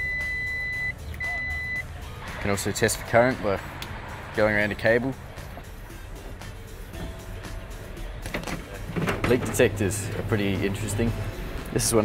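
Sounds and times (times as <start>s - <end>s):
high-pitched meter beep: 0.0s - 1.8s.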